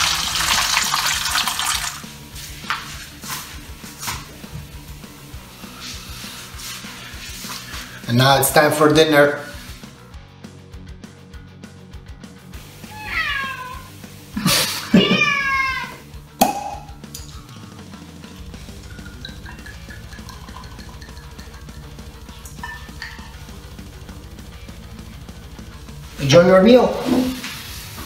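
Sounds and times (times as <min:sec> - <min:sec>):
cork popping: 0:16.4 - 0:17.4, 0:18.7 - 0:23.4.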